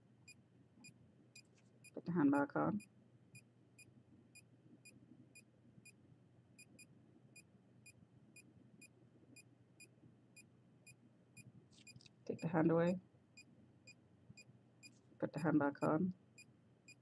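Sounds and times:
faint low hum: 0:00.0 - 0:17.0.

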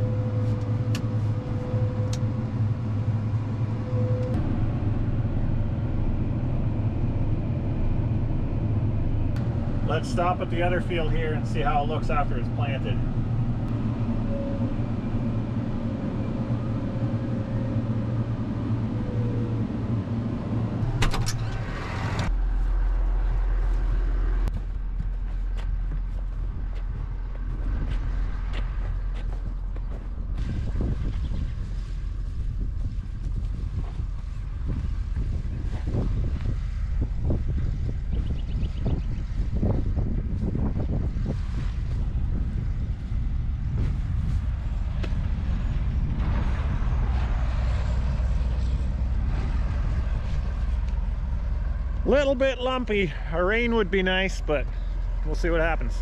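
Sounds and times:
tractor engine running: 0:00.0 - 0:56.0
footsteps crunching on dry soil: 0:22.3 - 0:37.0, 0:40.3 - 0:45.7.

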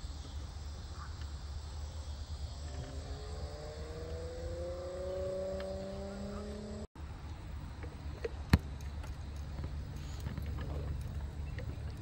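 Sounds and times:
distant engine drone rising: 0:01.8 - 0:06.9.

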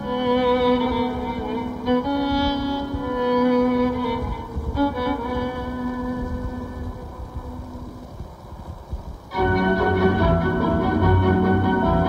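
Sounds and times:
held violin note: 0:00.0 - 0:08.0, 0:09.3 - 0:12.0
faint recording hiss: 0:00.0 - 0:12.0
recording low rumble: 0:00.0 - 0:12.0.

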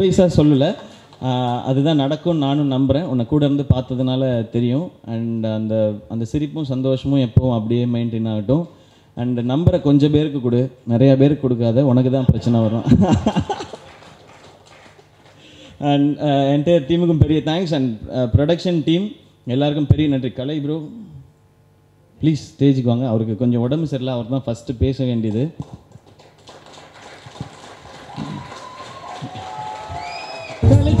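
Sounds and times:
man speaking into a microphone: 0:00.0 - 0:13.0, 0:15.8 - 0:21.2, 0:22.2 - 0:25.6
audience applause: 0:13.1 - 0:15.6, 0:25.6 - 0:31.0.

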